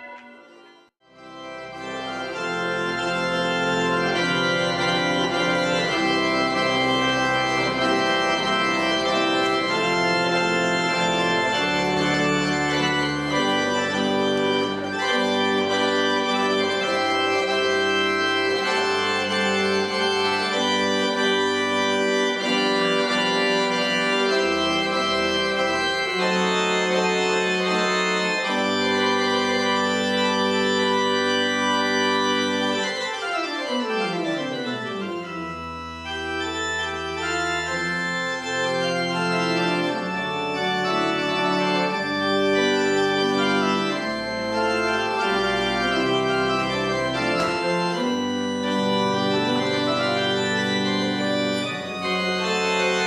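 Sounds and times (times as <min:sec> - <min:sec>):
church organ chords: 0:00.0 - 0:53.0.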